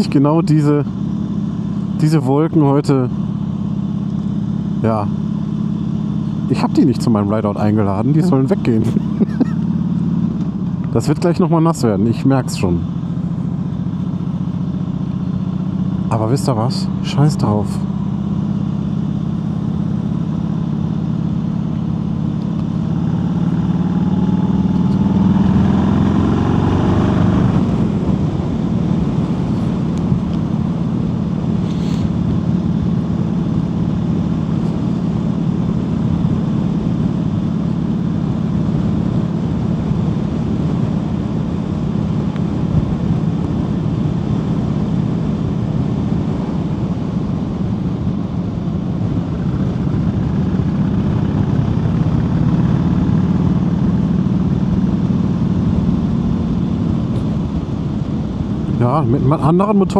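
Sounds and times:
motorcycle engine: 0:00.0 - 0:59.9
wind and road noise: 0:00.0 - 0:59.9.

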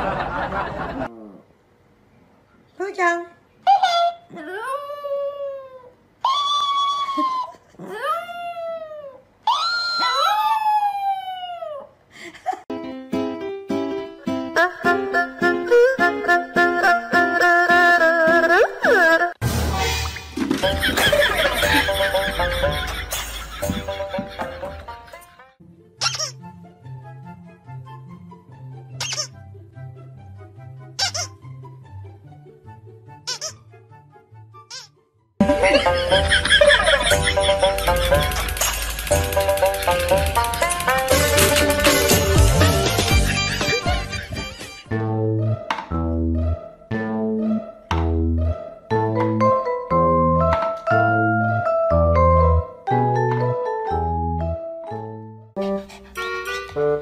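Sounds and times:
background music: 0:12.7 - 0:57.0
squeaky dog toy squeaking: 0:26.0 - 0:26.4, 0:29.0 - 0:29.4, 0:31.0 - 0:31.4, 0:33.2 - 0:33.6, 0:34.6 - 0:35.0
dog breathing: 0:55.6 - 0:56.2.

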